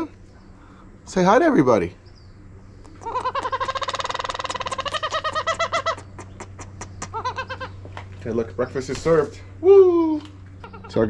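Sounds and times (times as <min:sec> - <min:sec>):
aracari calling: 0:00.0 - 0:11.0.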